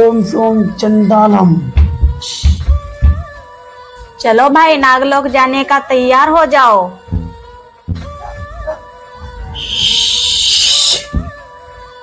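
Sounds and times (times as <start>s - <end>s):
loud hissing sound effect: 9.6s - 11.1s.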